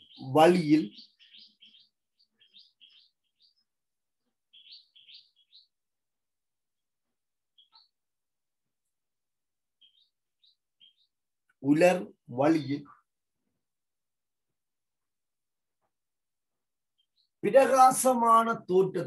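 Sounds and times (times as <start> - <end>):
bird chirping: 0.0 - 19.0.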